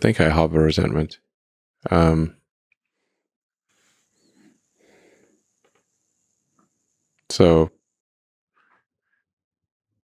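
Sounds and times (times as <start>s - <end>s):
faint breaths: 2.9s - 5.6s.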